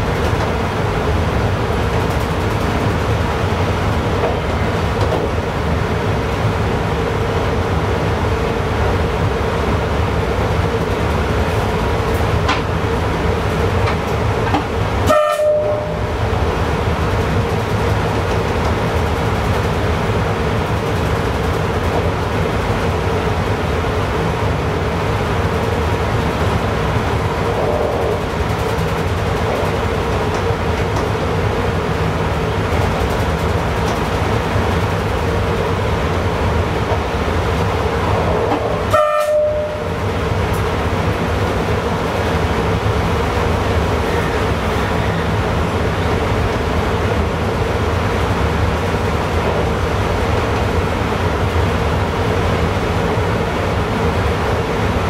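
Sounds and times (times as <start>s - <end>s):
train running at speed: 0.0s - 55.0s
short tone: 15.1s - 16.0s, 38.9s - 40.0s.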